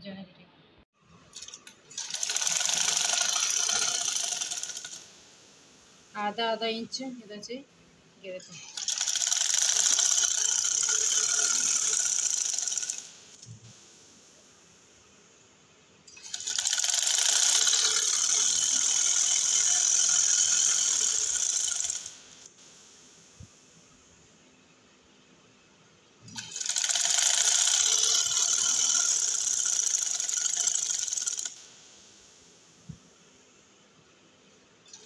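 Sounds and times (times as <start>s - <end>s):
sewing machine stitching: 1.3s - 5.0s, 8.5s - 13.4s, 16.1s - 22.1s, 26.3s - 31.6s.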